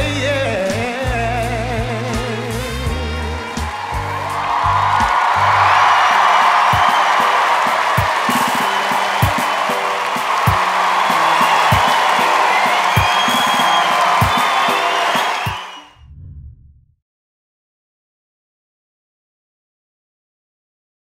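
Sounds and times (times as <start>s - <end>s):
music with slow steady beat: 0.0s - 15.8s
audience cheering and applauding: 2.5s - 16.0s.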